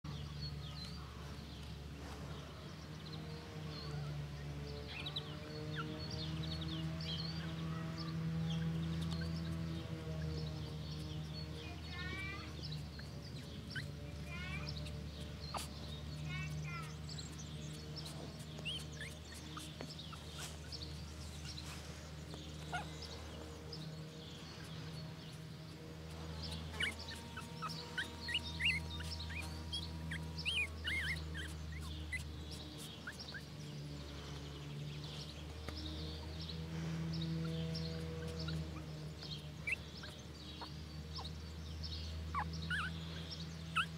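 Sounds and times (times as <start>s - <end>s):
small birds chirping: 0.0s - 43.9s
steady low hum: 0.3s - 43.9s.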